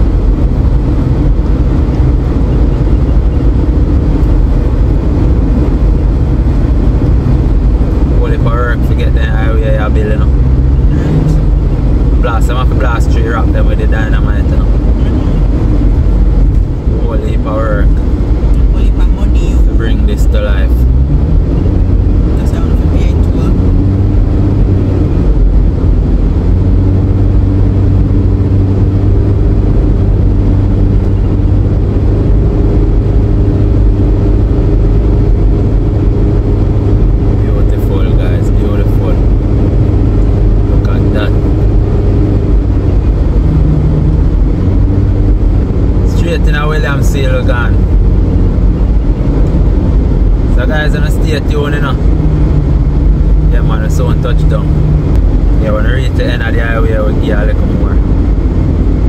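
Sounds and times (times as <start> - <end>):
road and engine rumble: 0.0 - 59.0.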